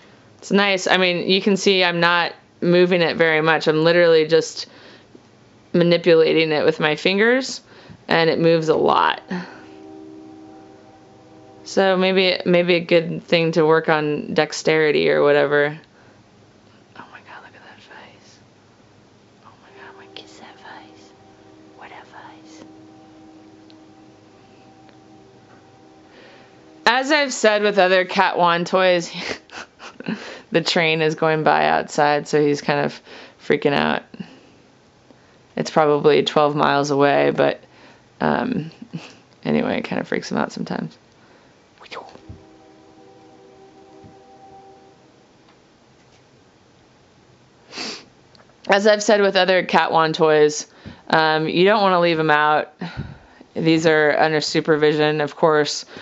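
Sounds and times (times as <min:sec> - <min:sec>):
distant train horn: 0:06.3 - 0:15.6, 0:19.5 - 0:29.5, 0:41.4 - 0:45.8
soft whispering: 0:16.9 - 0:18.4, 0:19.4 - 0:22.8, 0:41.8 - 0:42.4.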